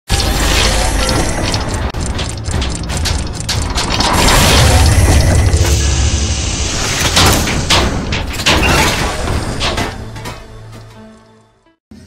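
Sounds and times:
gears and ratchets clicking: 0.1 - 10.8
heavy hits: 0.1 - 11.0
deep low rumble: 0.2 - 8.3.

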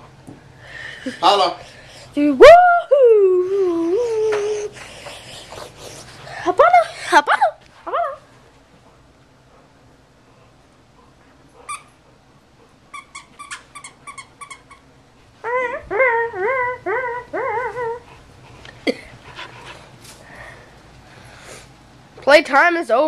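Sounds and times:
dog whining and yipping: 15.4 - 18.2.

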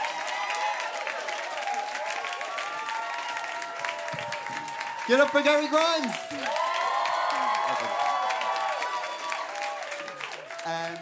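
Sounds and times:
audience applauding: 0.0 - 11.0
voices calling out and cheering: 0.0 - 11.0.

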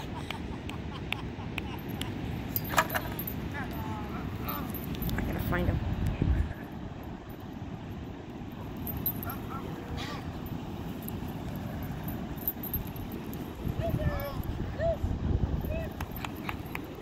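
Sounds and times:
wind and surf rumble: 0.0 - 17.0.

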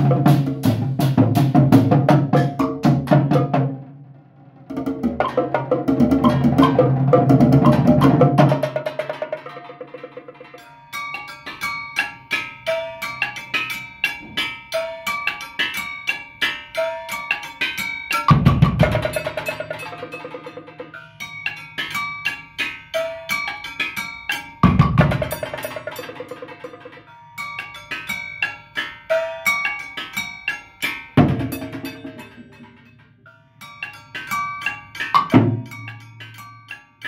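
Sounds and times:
drums and congas: 0.0 - 37.0
pitched percussion pattern: 0.0 - 37.0.

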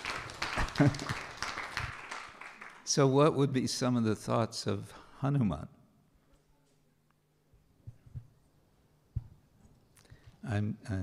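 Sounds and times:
audience applauding: 0.0 - 3.1.

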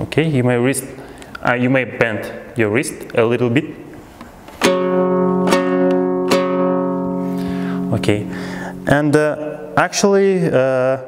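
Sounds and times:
two-stringed lute strummed: 4.6 - 9.8.

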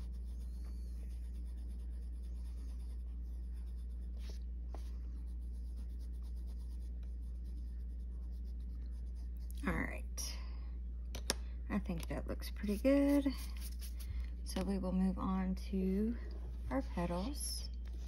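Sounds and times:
pencil scratching on paper: 0.0 - 9.4
steady low hum: 0.0 - 18.0.

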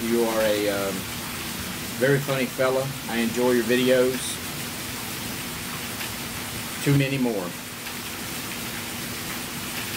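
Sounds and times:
steady background hiss: 0.0 - 9.9.

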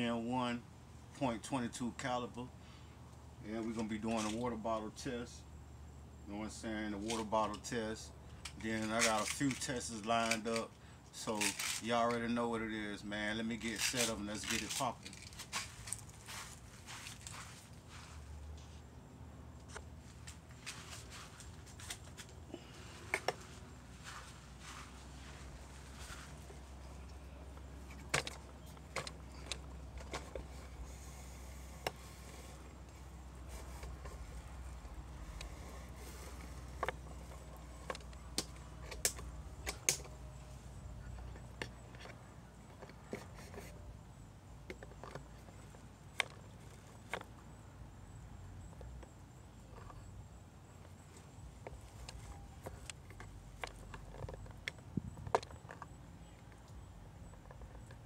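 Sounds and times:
footsteps: 13.8 - 18.8, 20.0 - 27.0.

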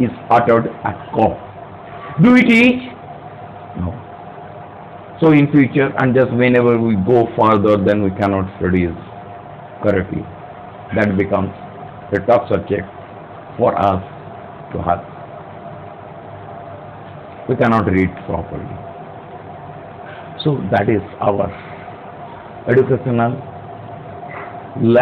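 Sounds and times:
man speaking: 0.0 - 1.5, 2.2 - 3.0, 3.7 - 4.1, 5.2 - 9.1, 9.8 - 13.0, 13.6 - 15.1, 17.4 - 18.9, 20.4 - 21.8, 22.6 - 23.6, 24.8 - 25.0
steady background hum: 0.0 - 25.0.

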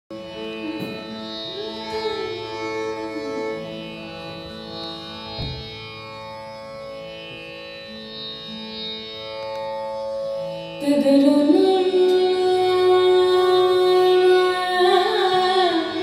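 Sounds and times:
tanpura drone: 0.1 - 16.0
violin sliding notes: 0.1 - 16.0
low drum thump: 4.3 - 5.8.

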